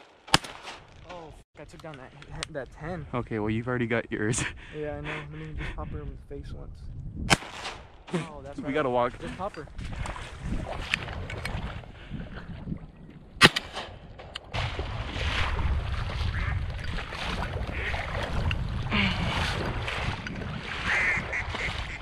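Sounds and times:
shotgun shot: 0.0s - 0.9s, 7.3s - 8.1s, 13.4s - 15.5s
wind: 0.0s - 22.0s
water noise: 8.1s - 22.0s.

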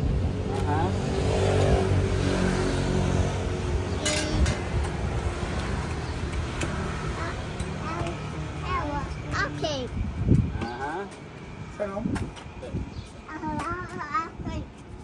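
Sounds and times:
vehicle engine passing: 0.0s - 9.7s.

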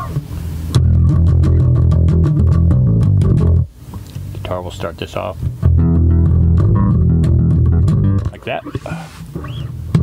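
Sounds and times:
electric bass guitar playing: 0.0s - 4.6s, 5.2s - 10.0s.

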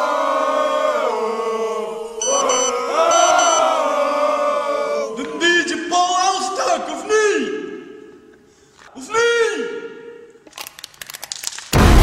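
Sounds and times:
sharp cracks and crackles: 10.4s - 12.0s
loud explosion blast: 11.8s - 12.0s.

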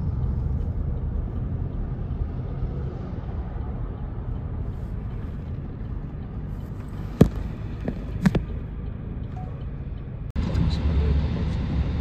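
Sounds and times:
city road traffic rumble: 0.0s - 12.0s.

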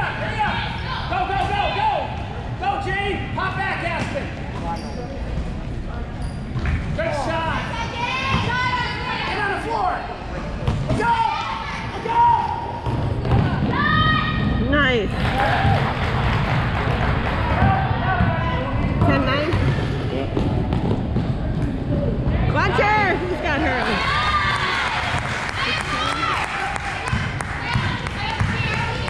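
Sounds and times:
busy gym noise: 0.0s - 29.0s
people shouting: 13.6s - 14.6s.

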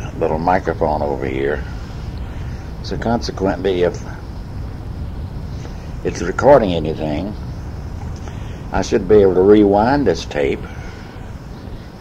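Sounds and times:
tape hiss and low rumble: 0.0s - 12.0s.

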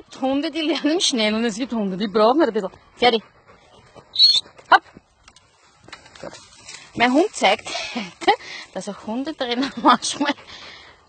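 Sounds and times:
dog whining and yipping: 4.1s - 4.5s.

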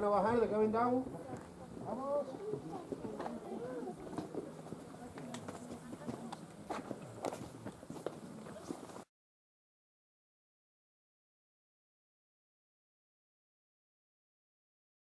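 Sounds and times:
distant people talking: 0.0s - 9.0s.

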